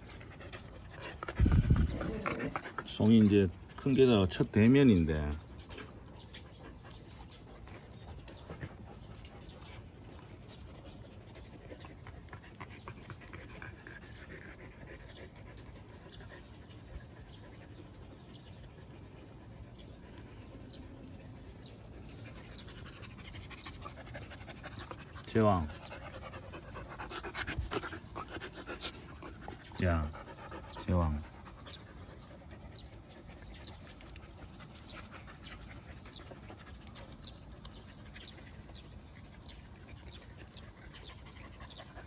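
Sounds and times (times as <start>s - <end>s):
dogs panting and sniffing: 0.0s - 42.0s.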